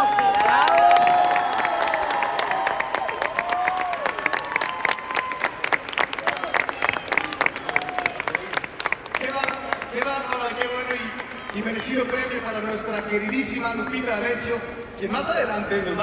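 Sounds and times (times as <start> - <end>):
audience applauding: 0.0 - 14.0.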